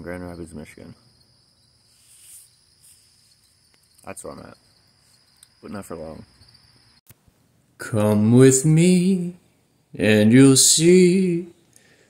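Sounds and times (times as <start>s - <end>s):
crickets chirping: 0.0s - 7.1s
short soft hiss: 1.9s - 3.4s.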